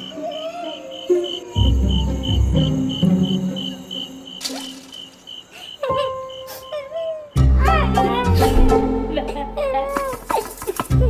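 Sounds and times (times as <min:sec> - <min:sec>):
crickets chirping: 0:00.0 - 0:07.6.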